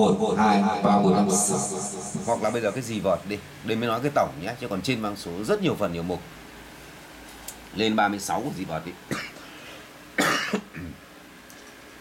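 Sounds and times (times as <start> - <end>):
man coughing: 9.1 - 9.4, 10.2 - 11.0.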